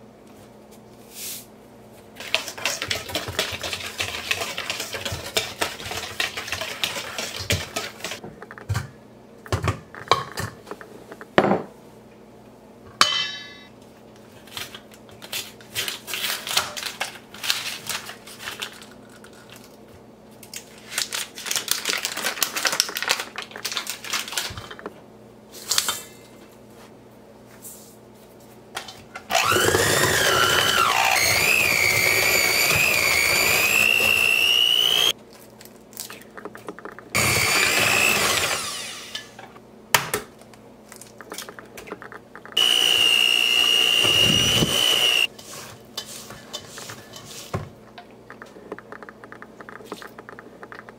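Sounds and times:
electric hand mixer whining: 29.3 - 35.1, 37.2 - 39.4, 42.6 - 45.3.

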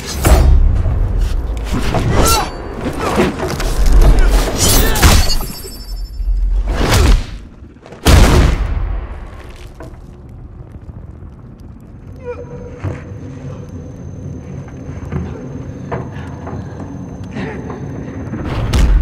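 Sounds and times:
low rumble: 8.5 - 19.0.

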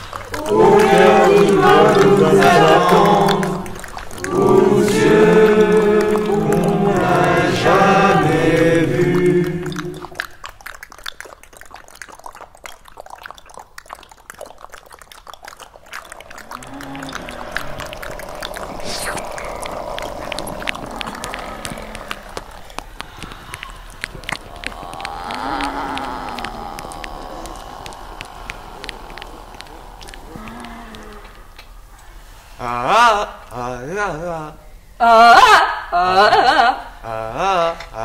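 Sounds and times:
low arching tone: 0.4 - 10.3, 15.9 - 32.2
dense irregular clicks and crackles: 3.6 - 4.3, 10.0 - 32.2.

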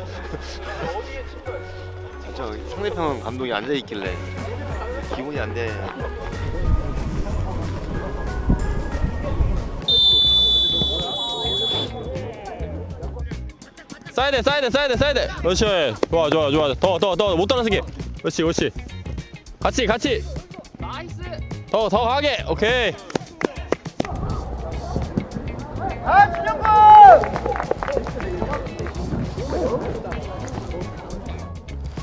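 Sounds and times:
background music: 0.0 - 32.0
shrill whistle blast: 9.9 - 12.0.

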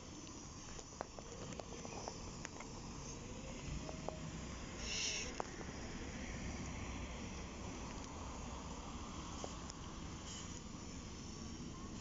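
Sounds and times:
distant bus engine running: 0.0 - 12.0
outdoor background noise: 0.0 - 12.0.

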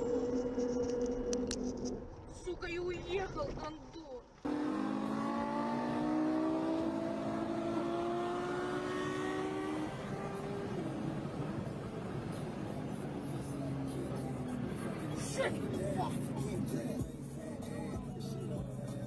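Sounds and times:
sports car engine accelerating: 4.4 - 19.0.

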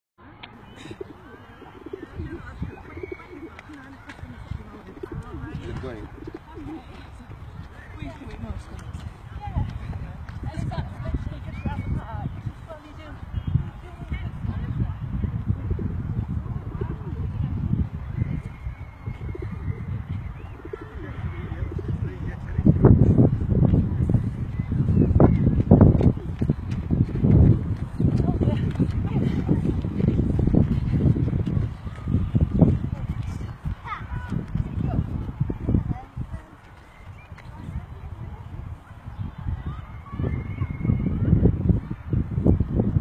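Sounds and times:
small birds chirping: 0.4 - 14.9, 16.8 - 22.0, 23.3 - 38.4
pigeons cooing: 0.7 - 7.2, 15.7 - 17.4, 18.4 - 22.1.

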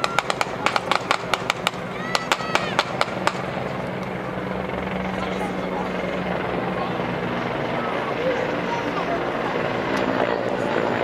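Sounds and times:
helicopter engine and rotor: 0.0 - 11.0.

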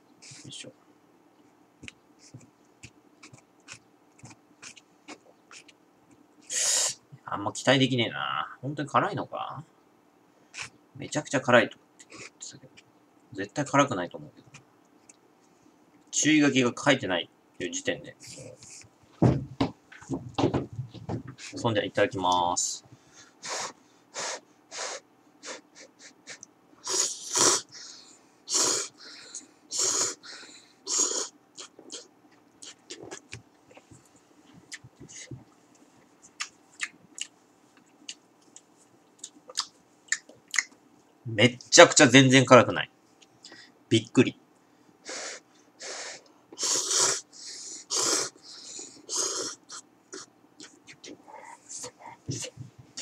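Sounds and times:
person slurping noodles: 26.8 - 27.7, 28.5 - 28.9, 46.6 - 47.2, 47.9 - 48.3
mouth clicks and smacks: 30.9 - 33.9, 34.6 - 40.8, 49.1 - 53.0.

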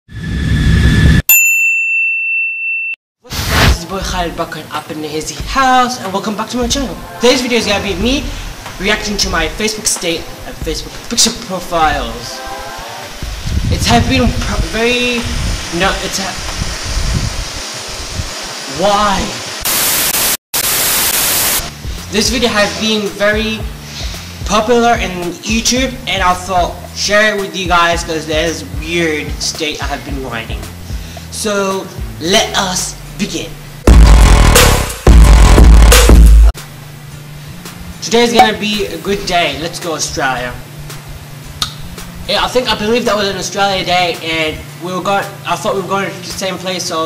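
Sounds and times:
bell-like ding: 1.3 - 3.0
loud rushing noise: 3.3 - 3.8, 6.6 - 11.0, 11.7 - 22.0
static hiss: 7.0 - 24.4.

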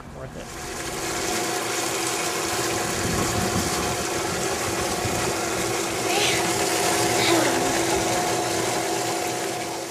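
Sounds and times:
steady hum: 0.0 - 9.9
water running into a tank: 0.3 - 9.9.

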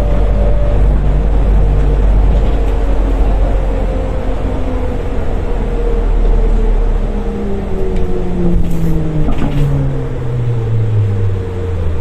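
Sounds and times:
low rumble: 0.0 - 12.0
trolleybus electric drive whining: 0.0 - 12.0.

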